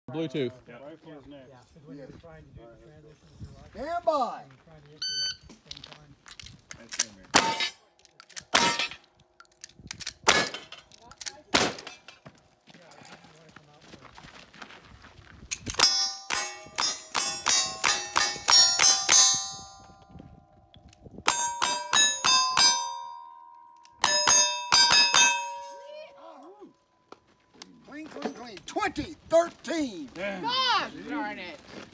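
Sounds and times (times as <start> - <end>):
steel plates ringing: 7.4 - 7.8, 15.8 - 20.1, 21.2 - 26.6
gunshots: 10.2 - 10.8, 11.5 - 12.1.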